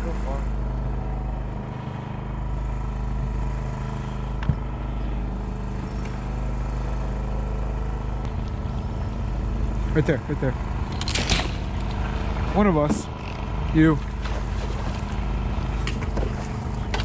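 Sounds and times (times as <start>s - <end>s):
small boat engine humming: 0.0s - 17.0s.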